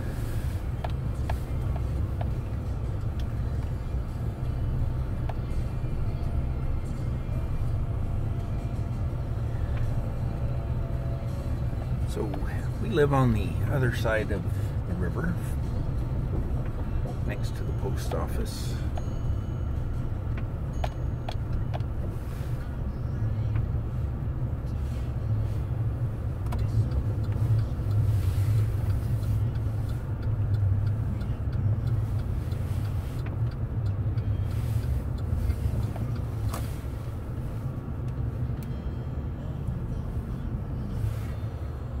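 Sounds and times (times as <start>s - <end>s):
vehicle engine and road rumble: 0.0s - 42.0s.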